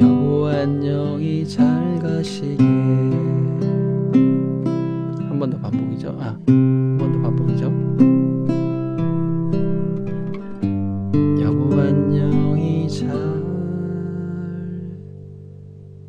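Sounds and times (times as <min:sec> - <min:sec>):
fingerpicked classical guitar: 0:00.0 - 0:16.0.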